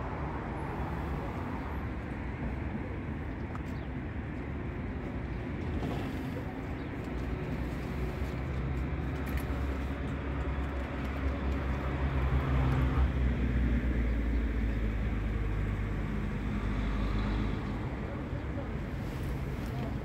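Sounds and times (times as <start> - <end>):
vehicle engine low hum: 0.0 - 20.0.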